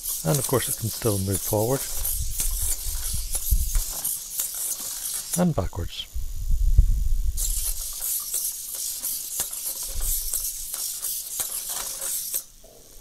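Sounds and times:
servo motors whirring: 0.0 - 5.8, 7.3 - 12.6.

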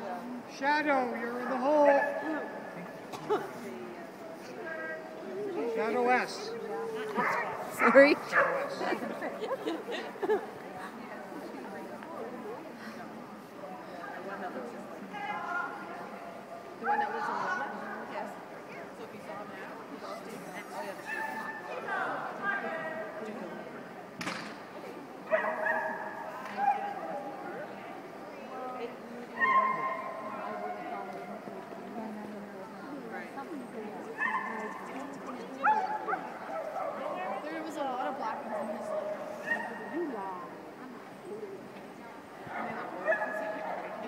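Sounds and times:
dog barking: 7.2 - 8.8, 29.4 - 30.2, 42.6 - 44.0.

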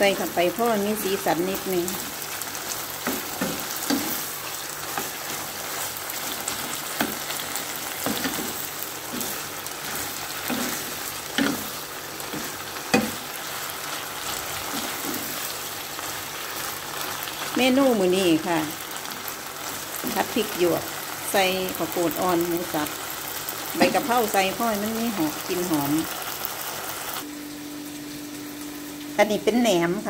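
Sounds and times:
meat and vegetables sizzling: 0.0 - 30.0
spatula scraping and knocking pan: 3.0 - 13.3.

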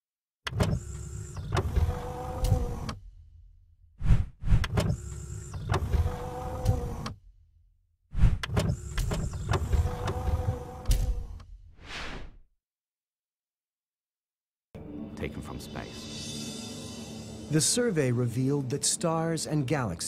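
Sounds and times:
mechanical motor humming: 0.5 - 3.1, 4.6 - 7.3, 8.4 - 11.5.

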